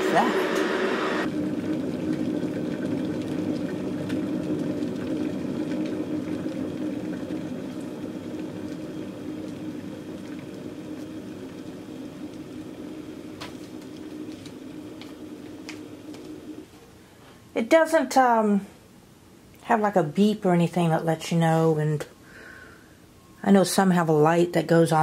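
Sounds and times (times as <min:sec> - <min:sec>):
electric kettle rumbling: 0:00.0 - 0:16.8.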